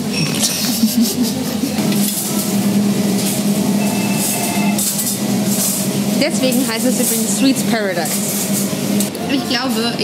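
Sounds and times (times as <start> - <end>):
hum of room and diners: 0.0 - 10.0.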